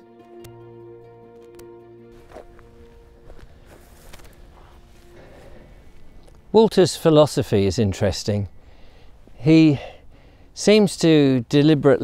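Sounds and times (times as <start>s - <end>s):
background music: 0.0s - 8.1s
faint outdoor ambience: 0.5s - 12.0s
footsteps on dirt track: 2.1s - 6.6s.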